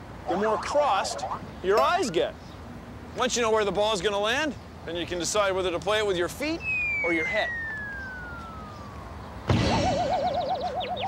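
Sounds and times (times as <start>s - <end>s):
fast high chirps: 0.2s - 1.5s, 6.6s - 11.0s
sharp cartoon thump: 9.4s - 10.1s
wobbling spring boing: 9.5s - 11.0s.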